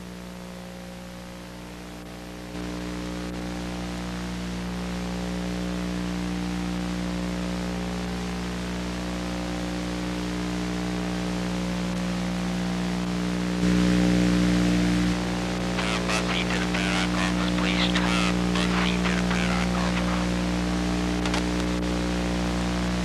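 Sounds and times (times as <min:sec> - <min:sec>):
buzzing electrical hum: 0:00.0 - 0:23.0.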